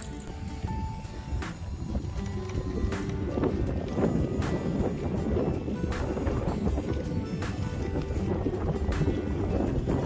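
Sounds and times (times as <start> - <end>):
faint music: 0.0 - 10.0
wheelchair wheels rolling on asphalt: 0.0 - 10.0
wind buffeting microphone: 0.0 - 10.0.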